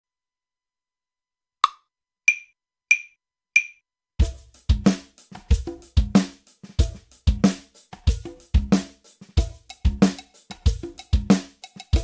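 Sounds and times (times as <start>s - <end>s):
metronome clicks: 1.6s - 3.8s.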